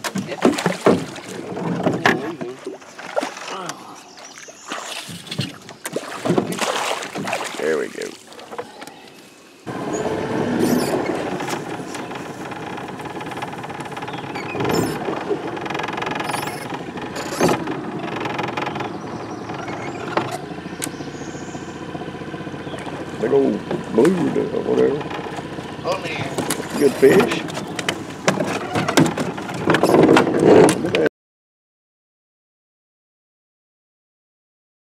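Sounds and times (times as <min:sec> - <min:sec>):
water splashing: 0:00.0 - 0:09.2, 0:09.9 - 0:30.0
boat motor idling: 0:05.6 - 0:31.1.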